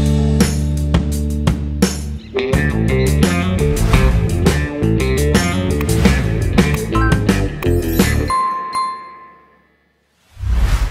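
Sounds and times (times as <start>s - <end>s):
background music: 0.0s - 9.8s
notification bell chime: 8.3s - 9.7s.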